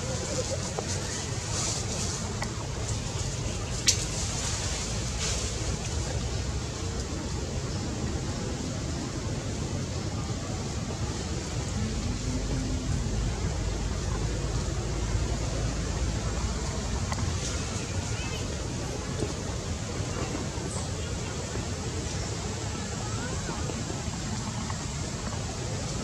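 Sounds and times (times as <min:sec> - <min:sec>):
even hiss: 0:00.0 - 0:26.0
low rumble: 0:07.6 - 0:20.8.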